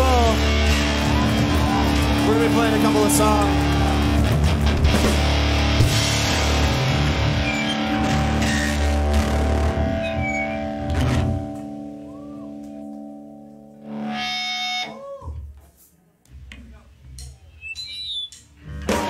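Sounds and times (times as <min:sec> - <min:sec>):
live rock band playing: 0:00.0 - 0:12.1, 0:18.8 - 0:19.0
sliding guitar tones: 0:00.0 - 0:15.3, 0:17.2 - 0:19.0
guitar chord ringing: 0:05.2 - 0:15.0.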